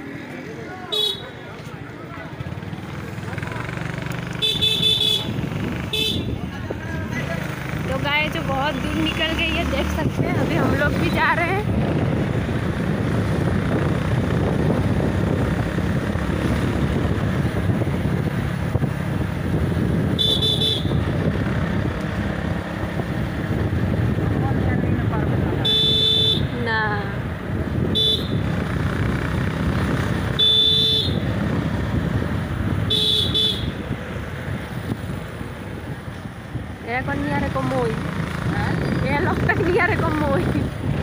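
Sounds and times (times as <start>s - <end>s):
motorcycle engine: 0.0s - 41.0s
road noise: 0.0s - 41.0s
wind rumble: 5.2s - 25.6s, 26.4s - 30.4s, 31.1s - 41.0s.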